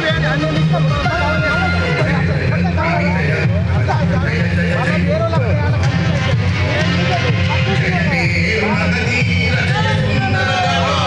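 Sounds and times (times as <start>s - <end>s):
crowd voices calling out: 0.0s - 11.0s.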